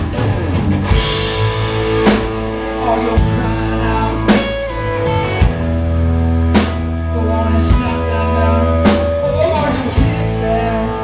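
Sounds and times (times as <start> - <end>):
live blues band: 0.0 - 11.0.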